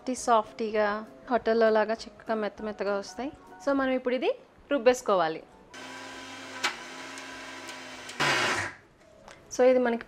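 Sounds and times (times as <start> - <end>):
mixer grinder motor hum: 5.8 - 8.8.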